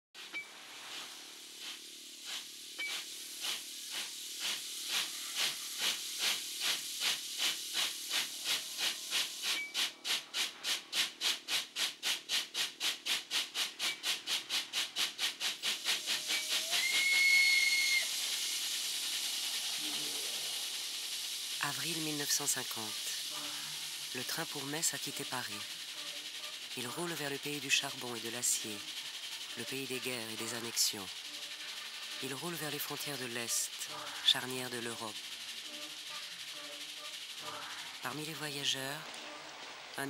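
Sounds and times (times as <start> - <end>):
steam locomotive exhaust chuffs: 0.2 - 38.8
steam hissing: 0.2 - 40.0
steam whistle blast: 16.0 - 18.7.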